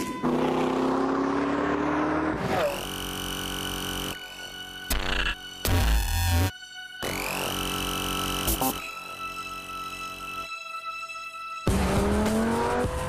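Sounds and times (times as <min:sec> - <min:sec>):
sports car engine accelerating: 0:00.0 - 0:03.4, 0:11.7 - 0:13.0
synthesizer music: 0:00.0 - 0:13.0.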